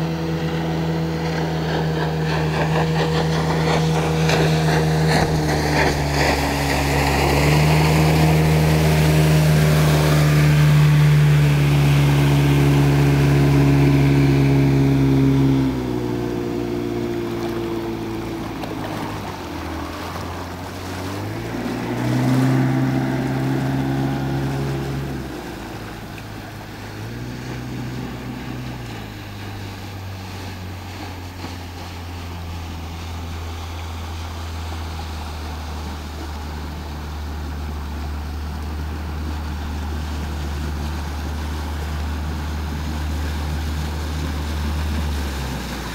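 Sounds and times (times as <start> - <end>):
speedboat outboard motor: 0.0 - 45.9.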